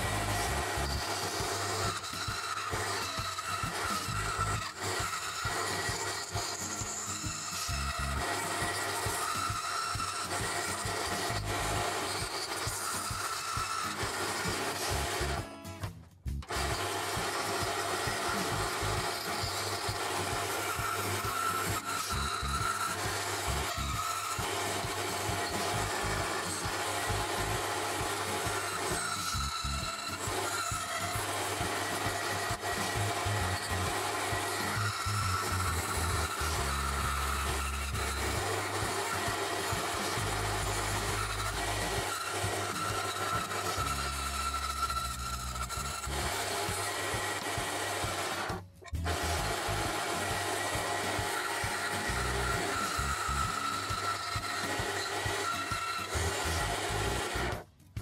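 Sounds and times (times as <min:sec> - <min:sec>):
bandsaw cutting wood: 0:00.0 - 0:58.0.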